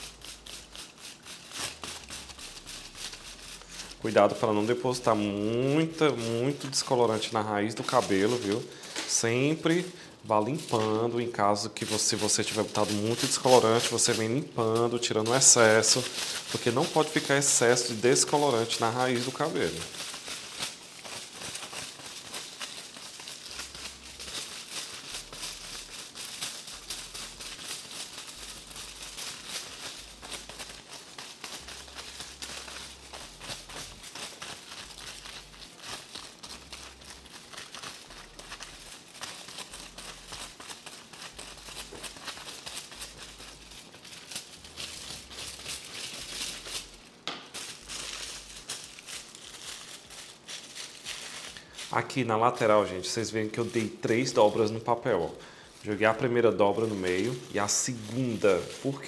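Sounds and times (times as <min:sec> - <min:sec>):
aluminium foil crinkling: 0:00.0 - 0:59.0.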